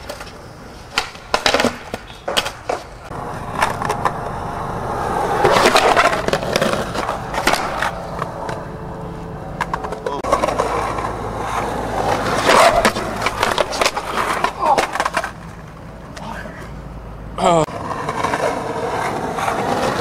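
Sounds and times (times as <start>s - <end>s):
skateboard tail clacks: 0.0s - 4.4s, 5.0s - 8.8s, 9.5s - 16.2s
skateboard trucks grinding concrete: 0.0s - 16.1s, 17.6s - 20.0s
skateboard wheels rolling: 0.0s - 20.0s.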